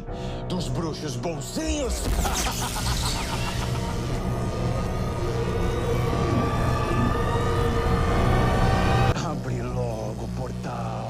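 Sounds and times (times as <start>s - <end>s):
dark tense soundtrack music: 0.0s - 11.0s.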